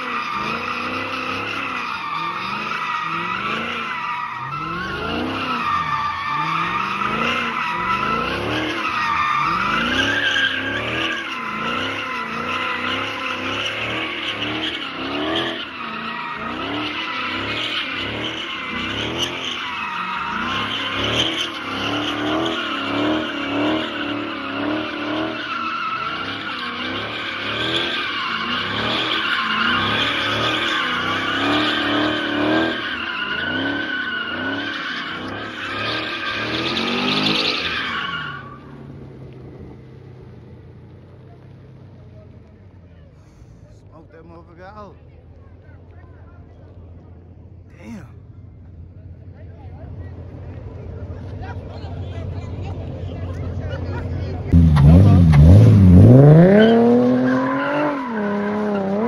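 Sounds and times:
tyres squealing: 0:00.0 - 0:38.7
car engine revving: 0:00.0 - 0:41.9, 0:47.2 - 0:59.0.

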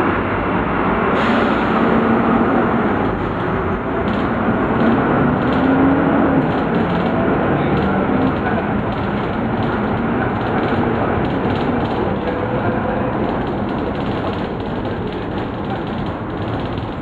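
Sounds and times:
bus diesel engine and road noise: 0:00.0 - 0:17.0.

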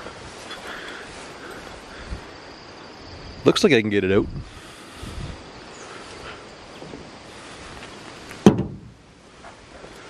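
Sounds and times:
light wind: 0:00.0 - 0:10.0
rustling through tall weeds: 0:00.0 - 0:10.0
sharp knock: 0:08.4 - 0:09.0.

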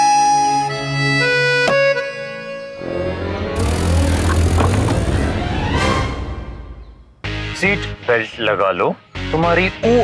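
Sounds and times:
car engine revving: 0:02.8 - 0:06.9.

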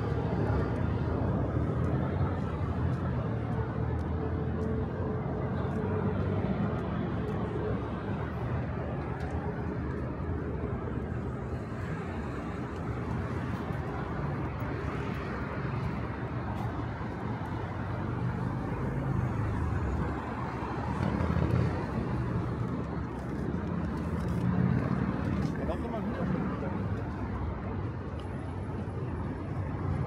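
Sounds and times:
road traffic rushing: 0:00.0 - 0:30.0.

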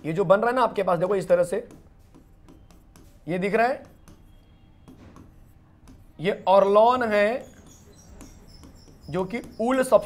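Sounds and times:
pen scratching on display: 0:00.0 - 0:10.0
man speaking: 0:06.2 - 0:07.5, 0:09.1 - 0:10.0.

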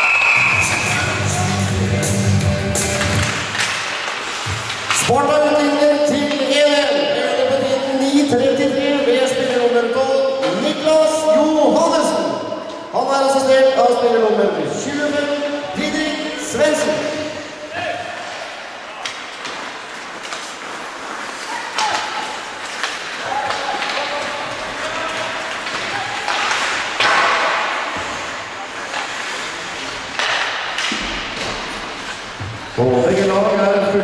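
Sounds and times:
skates scraping ice: 0:00.4 - 0:06.7, 0:14.8 - 0:34.0
knocks of sticks and puck: 0:02.8 - 0:05.3, 0:19.0 - 0:33.3.

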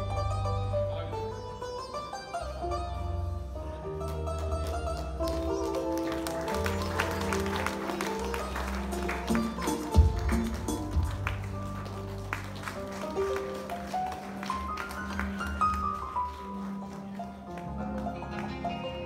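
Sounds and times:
keyboard-led band music: 0:00.0 - 0:19.0.

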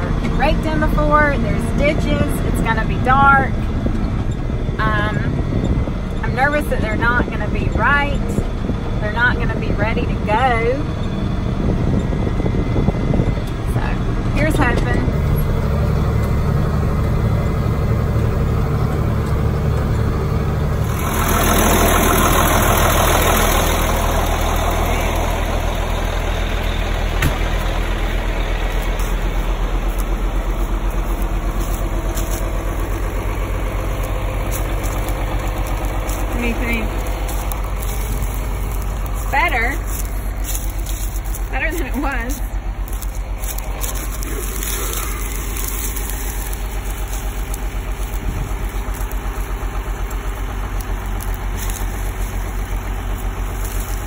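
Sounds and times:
tractor engine idling: 0:00.0 - 0:54.0.

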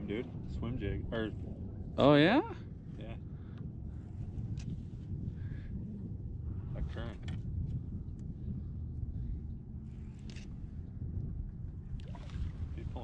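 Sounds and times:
boat rumbling on water: 0:00.0 - 0:13.0.

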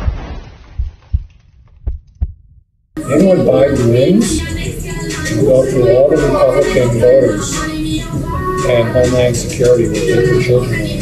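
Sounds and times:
low bass thumps: 0:00.0 - 0:03.0.

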